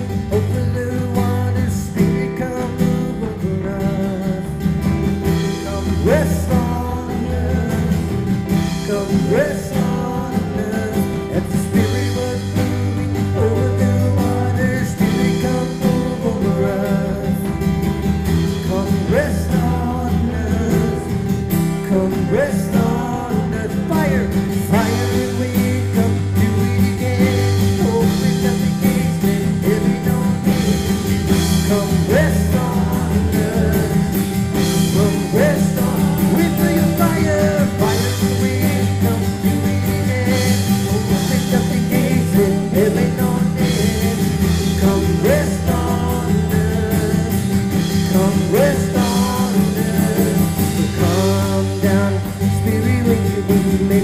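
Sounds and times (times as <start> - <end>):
acoustic guitar: 0.0 - 54.0
drums: 0.0 - 54.0
electric guitar: 0.0 - 54.0
keyboard: 0.0 - 54.0
person singing lead: 0.0 - 54.0.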